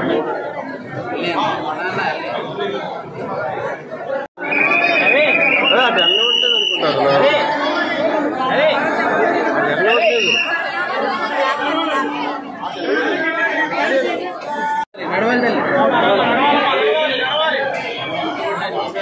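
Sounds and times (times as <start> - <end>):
crowd babble: 0.0 - 19.0.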